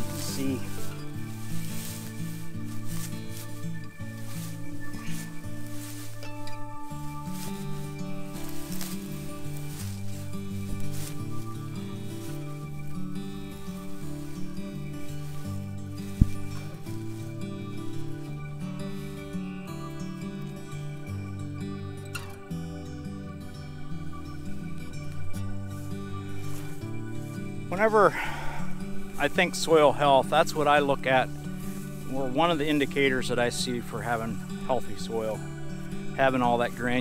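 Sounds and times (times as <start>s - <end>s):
grass rustling pulled by hand: 0.0s - 21.1s, 24.0s - 37.0s
soft music of held chords: 0.0s - 37.0s.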